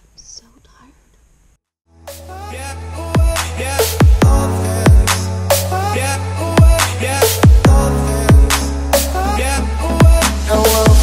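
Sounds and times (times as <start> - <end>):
person whispering: 0.1 - 1.1.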